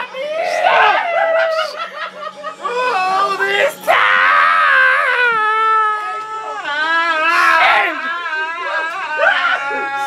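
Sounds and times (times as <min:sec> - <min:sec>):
young men laughing and shrieking: 0:00.0 - 0:10.0.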